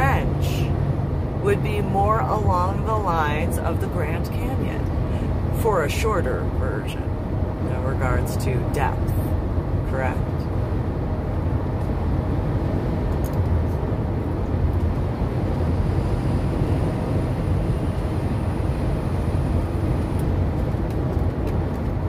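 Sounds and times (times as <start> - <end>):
car driving at highway speed: 0.0 - 22.0.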